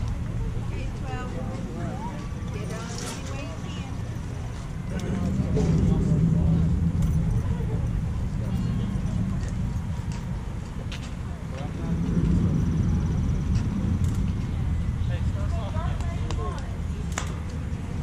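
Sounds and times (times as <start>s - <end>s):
steady low rumble: 0.0s - 18.0s.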